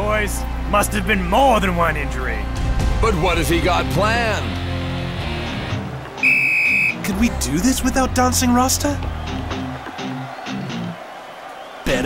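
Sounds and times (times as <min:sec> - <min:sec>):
cartoon soundtrack music: 0:00.0 - 0:11.0.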